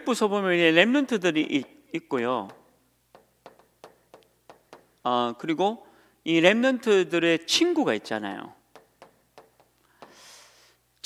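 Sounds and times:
chalk tapping on chalkboard: 0:01.6 - 0:05.1, 0:08.6 - 0:10.4.

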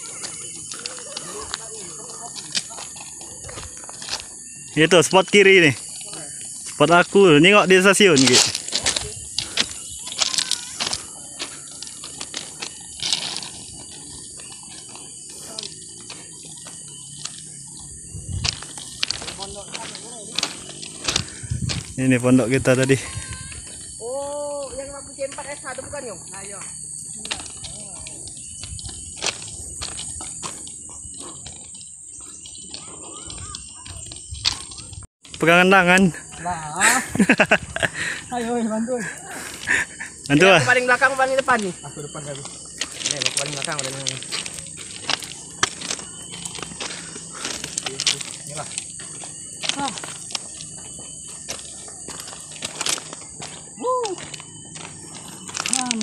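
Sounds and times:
footsteps crunching on stones: 0:00.0 - 0:56.0
insects droning: 0:00.0 - 0:56.0.

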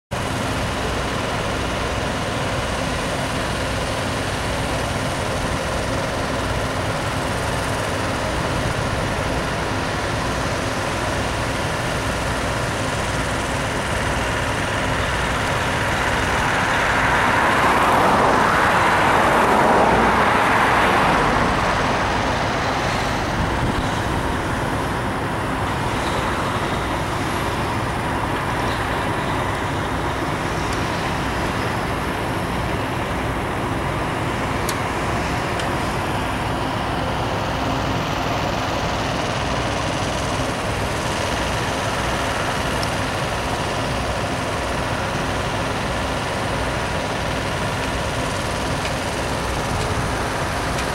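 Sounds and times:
diesel trucks running: 0:00.1 - 0:50.9.

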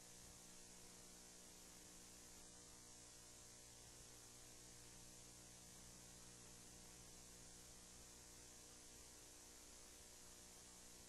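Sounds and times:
faint mains hum: 0:00.0 - 0:11.0
recording hiss: 0:00.0 - 0:11.0.

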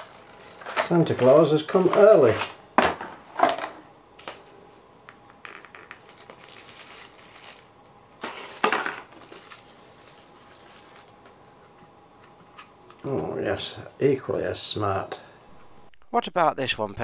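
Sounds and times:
plastic packaging clicks and crinkling: 0:05.8 - 0:11.4.

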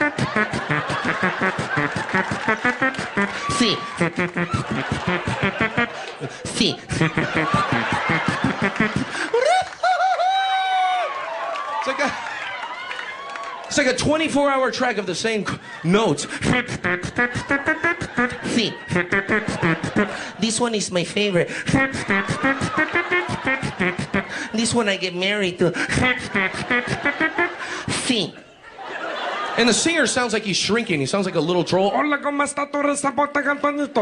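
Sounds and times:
man singing comic syllables: 0:00.0 - 0:09.5, 0:16.2 - 0:28.3
man vocally mimicking music: 0:00.0 - 0:09.8, 0:13.7 - 0:28.4, 0:29.6 - 0:34.0.

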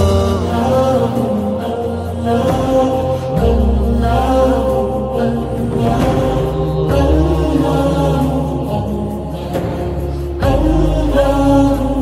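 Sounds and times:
chanted voices: 0:00.0 - 0:12.0
deep bass drone: 0:00.0 - 0:12.0.

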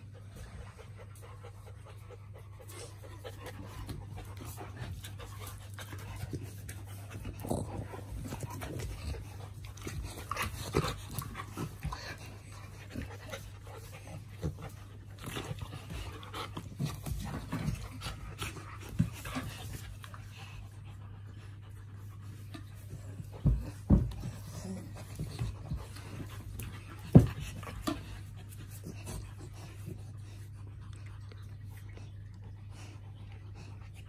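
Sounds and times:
dogs panting: 0:00.0 - 0:34.0
dogs scuffling: 0:02.6 - 0:20.7.

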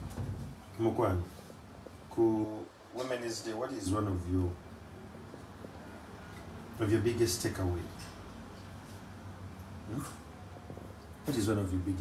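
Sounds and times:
kitchen room noise: 0:00.0 - 0:12.0.

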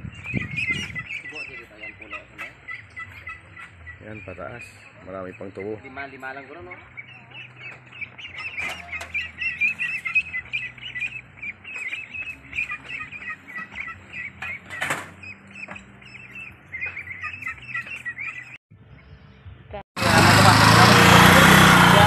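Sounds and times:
ducklings peeping: 0:00.0 - 0:19.3.

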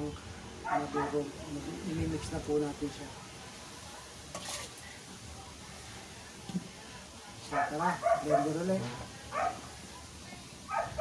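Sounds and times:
faint background noise: 0:00.0 - 0:11.0
scraping rustle of bowls: 0:04.3 - 0:05.0.

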